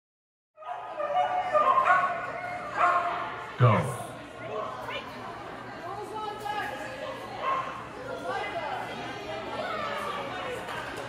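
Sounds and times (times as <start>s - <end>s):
dog yip-barking: 0.6s - 3.2s.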